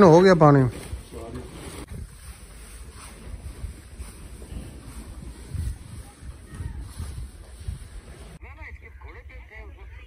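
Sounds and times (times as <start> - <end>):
wind buffeting microphone: 0.1 - 10.0.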